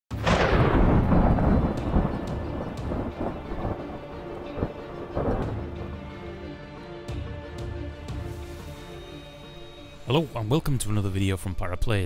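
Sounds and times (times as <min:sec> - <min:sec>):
thunder crack and rumble: 0:00.1 - 0:06.0.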